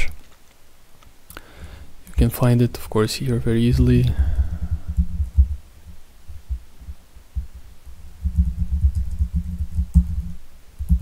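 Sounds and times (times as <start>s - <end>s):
computer keyboard typing: 8.2s - 11.0s.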